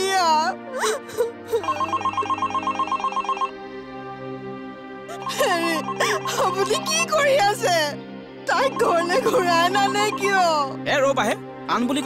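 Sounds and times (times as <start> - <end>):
soft background music: 0.0 - 12.0
phone ringtone trilling: 1.6 - 3.6, 5.2 - 7.2, 8.5 - 10.5.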